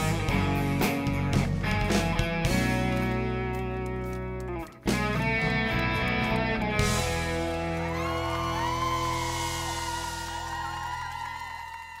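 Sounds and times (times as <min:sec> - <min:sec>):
audience whooping and cheering: 0:07.1 - 0:12.0.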